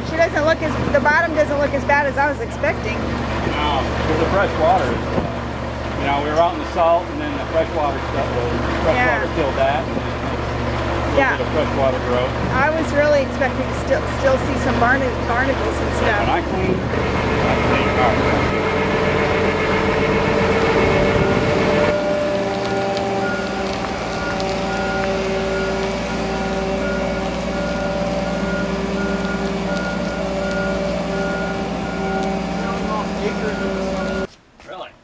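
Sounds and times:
travel lift engine humming: 0:00.0 - 0:34.3
motion alarm beeps: 0:24.2 - 0:34.3.

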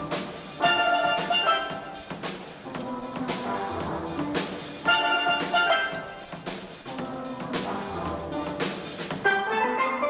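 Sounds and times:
steel band playing: 0:00.0 - 0:10.0.

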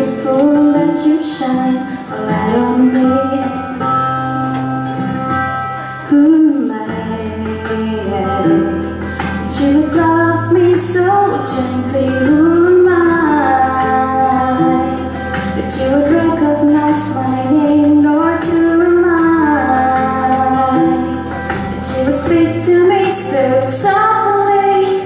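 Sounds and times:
instrumental accompaniment: 0:00.0 - 0:25.0
woman singing into a microphone: 0:00.0 - 0:25.0.

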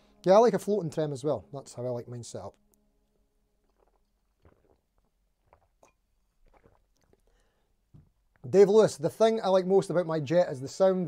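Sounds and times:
person gulping from glass: 0:03.6 - 0:08.4.

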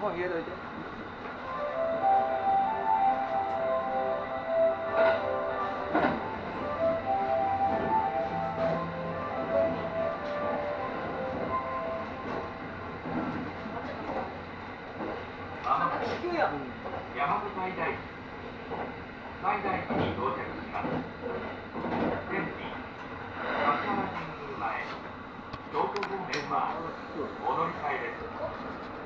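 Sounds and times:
train rolling noise: 0:00.0 - 0:29.0.

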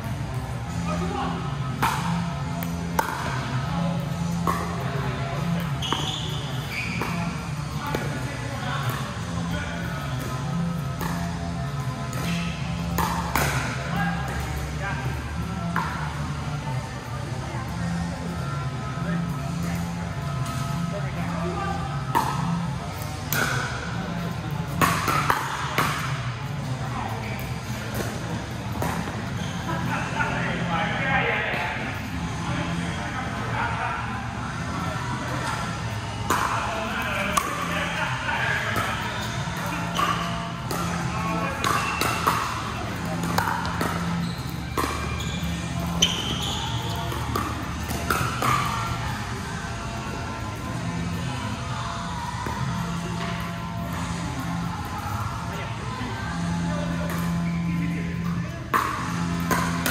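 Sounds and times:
voices in indoor hall: 0:00.0 - 0:59.9.

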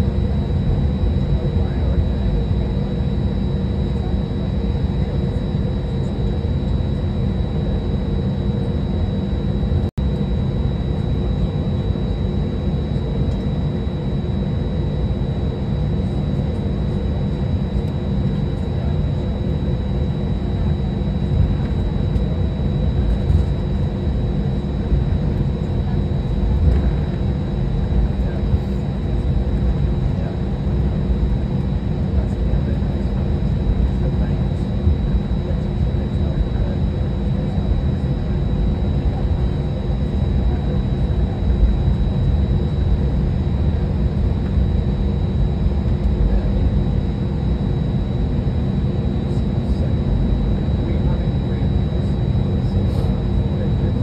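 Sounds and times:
jet engines low rumble: 0:00.0 - 0:54.0.

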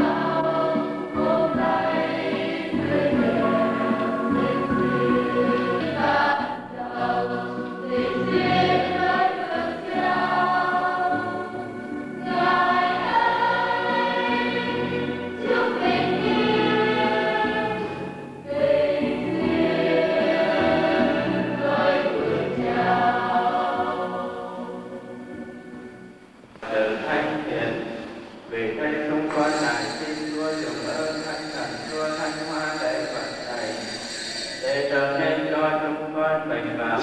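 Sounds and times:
church choir singing a hymn: 0:00.0 - 0:37.0.

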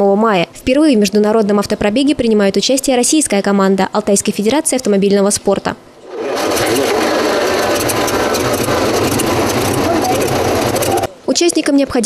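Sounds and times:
car engine running: 0:06.0 - 0:11.1.

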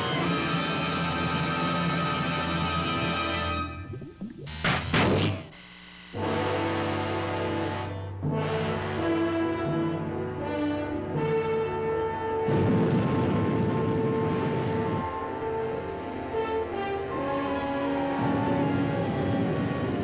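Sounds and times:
orchestral music with held chords: 0:06.2 - 0:12.5, 0:15.0 - 0:20.0.

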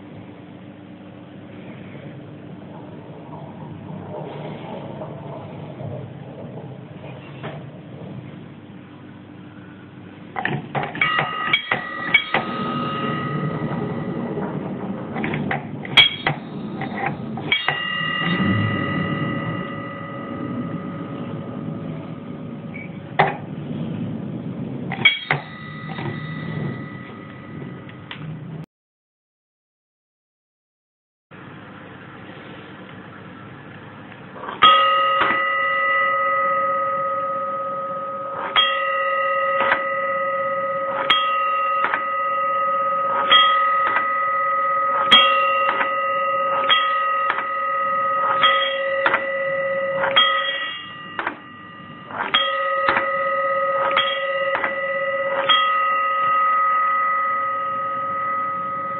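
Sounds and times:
electric bell striker chattering: 0:10.4 - 0:23.4, 0:34.5 - 0:58.9
steel bowl ringing: 0:10.9 - 0:28.1, 0:34.4 - 0:58.9.

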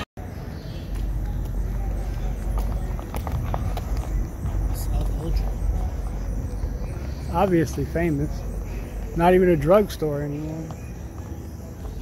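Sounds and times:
footsteps on pavement: 0:00.2 - 0:12.0.

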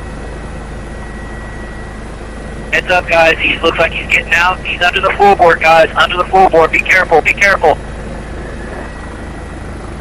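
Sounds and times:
faint high whine: 0:00.0 - 0:10.0
helicopter engine and rotor drone: 0:00.0 - 0:10.0.

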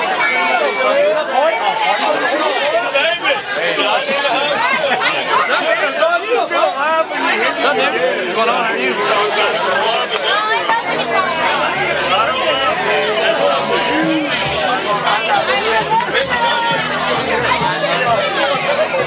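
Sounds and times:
crowd chatter: 0:00.0 - 0:19.0.

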